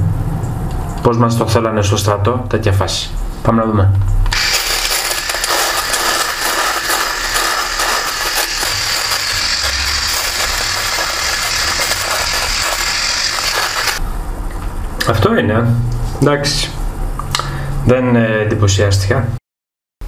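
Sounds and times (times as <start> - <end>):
electric shaver buzzing: 4.3 - 14.0.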